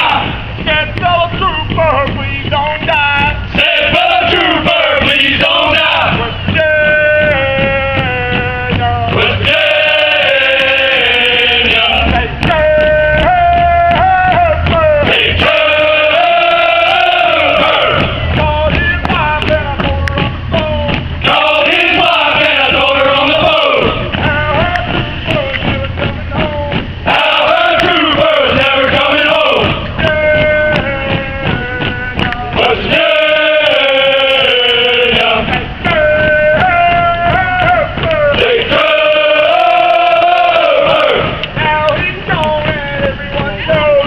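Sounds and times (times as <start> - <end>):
men singing together: 0.0 - 44.0.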